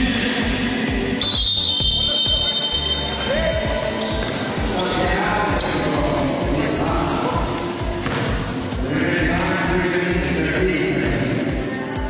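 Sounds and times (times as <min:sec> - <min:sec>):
music playing: 0:00.0 - 0:12.0
high-pitched tone: 0:01.2 - 0:04.3
basketball bouncing: 0:07.9 - 0:08.6.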